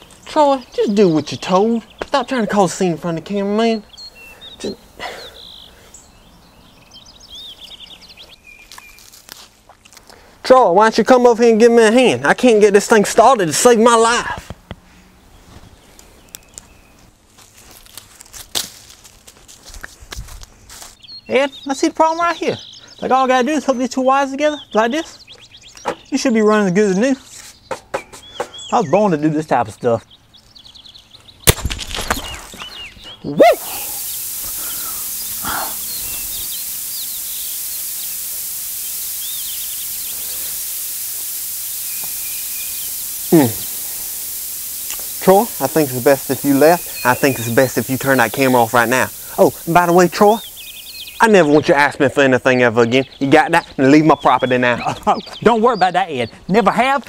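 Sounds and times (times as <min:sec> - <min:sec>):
birds chirping: 0:00.0 - 0:09.1, 0:15.1 - 0:17.2, 0:20.6 - 0:57.0
electric shock crackling: 0:33.5 - 0:51.7.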